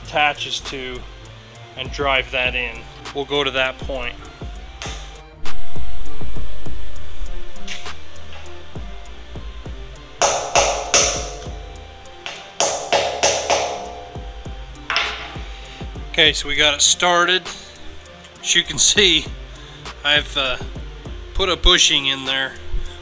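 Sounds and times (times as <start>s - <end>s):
background music: 0.0s - 23.0s
hammer tapping metal pin: 4.8s - 5.2s, 10.2s - 15.4s.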